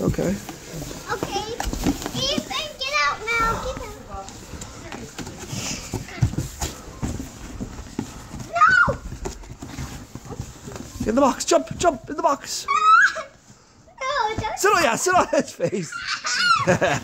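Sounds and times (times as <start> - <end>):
young children's voices: 0.9 - 4.8, 8.3 - 9.3, 12.5 - 14.6.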